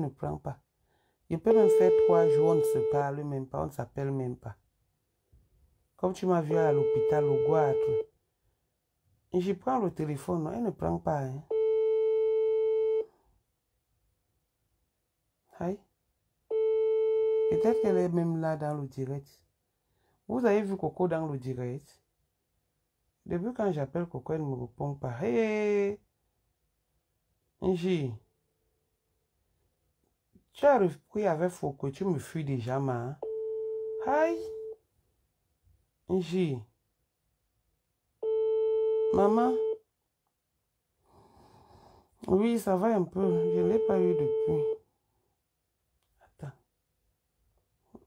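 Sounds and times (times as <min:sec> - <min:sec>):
telephone ringback tone: 0:01.5 - 0:03.0, 0:06.5 - 0:08.0, 0:43.3 - 0:44.8.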